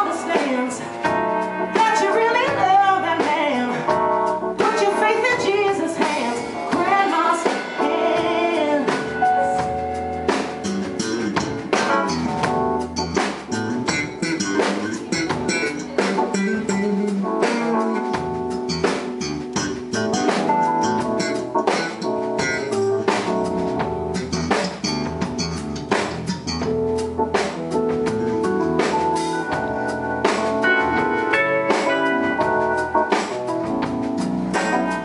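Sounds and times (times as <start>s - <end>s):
drum kit beat: 0.0s - 35.0s
guitar: 0.0s - 35.0s.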